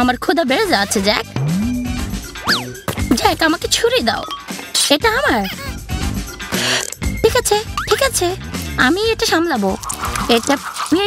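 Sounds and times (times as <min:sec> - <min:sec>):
background music: 0:00.0 - 0:11.0
low tone sliding up: 0:01.4 - 0:02.1
cartoon boing: 0:01.4 - 0:02.8.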